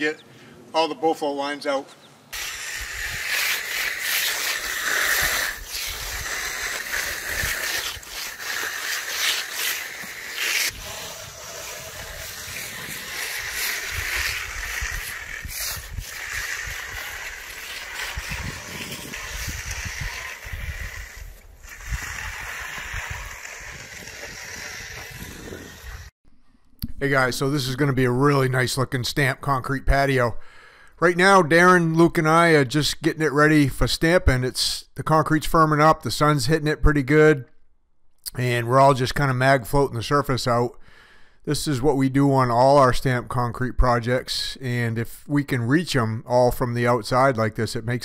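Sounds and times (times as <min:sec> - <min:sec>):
concrete floats scraping wet concrete: 0:02.3 - 0:26.1.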